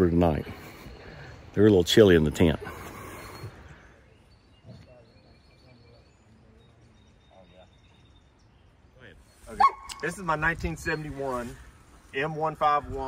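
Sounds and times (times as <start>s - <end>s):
faint distant voices: 0.0s - 11.7s.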